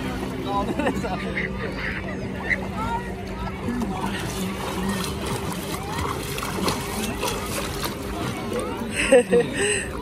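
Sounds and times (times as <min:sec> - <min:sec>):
people's voices: 0:00.0 - 0:10.0
water splashing from swim strokes: 0:00.0 - 0:10.0.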